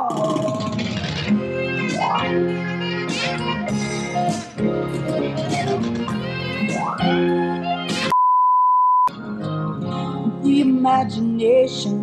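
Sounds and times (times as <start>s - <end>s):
test-tone beep: 8.1s - 9.1s.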